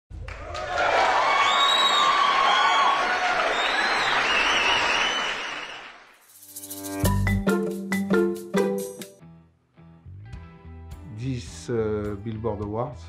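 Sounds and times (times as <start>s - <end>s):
crowd applauding and cheering: 0.1s - 6.2s.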